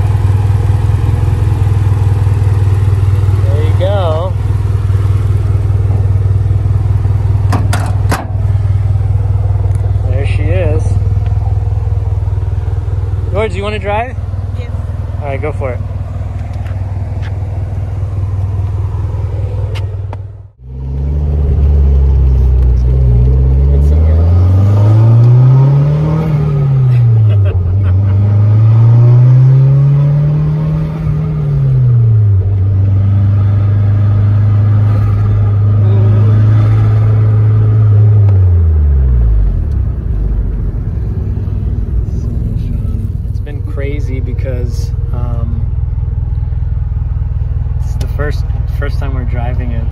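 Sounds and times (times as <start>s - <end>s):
car engine accelerating: 0.0s - 49.9s
car engine idling: 0.0s - 49.9s.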